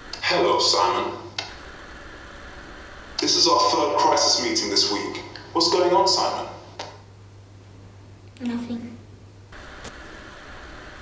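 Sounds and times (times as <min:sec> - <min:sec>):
low steady hum: 0:00.0 - 0:11.0
faint hiss: 0:01.3 - 0:05.6, 0:09.5 - 0:11.0.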